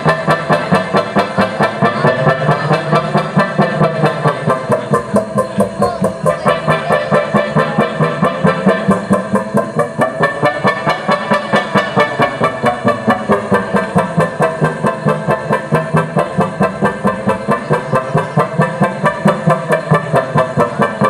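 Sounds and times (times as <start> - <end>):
pulsing droning synth music: 0.0 - 21.0.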